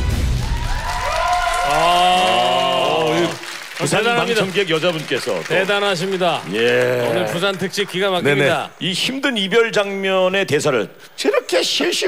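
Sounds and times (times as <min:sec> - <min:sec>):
audience clapping: 0:00.0 - 0:08.7
man saying aah: 0:06.5 - 0:07.6.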